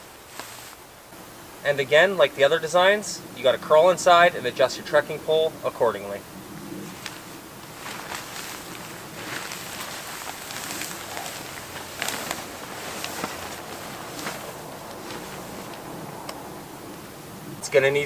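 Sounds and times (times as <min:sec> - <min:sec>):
tarp fabric rustling and crinkling: 0:00.0 - 0:01.1, 0:05.7 - 0:16.9.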